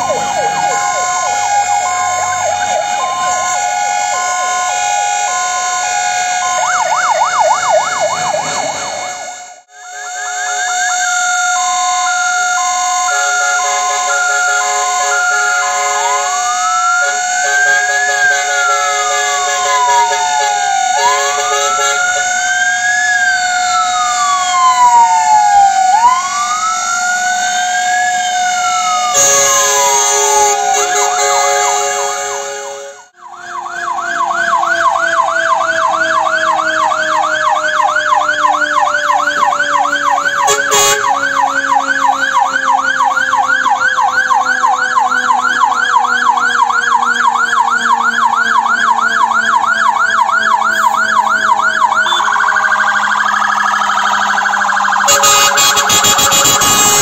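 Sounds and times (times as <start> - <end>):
siren yelp: 0.0 - 57.0
two-tone hi-lo siren: 0.0 - 57.0
wailing siren: 0.0 - 57.0.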